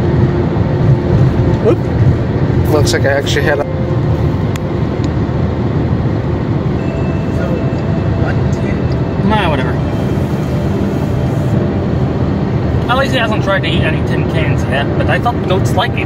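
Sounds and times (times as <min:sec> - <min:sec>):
car road and engine noise: 0:00.0 - 0:16.0.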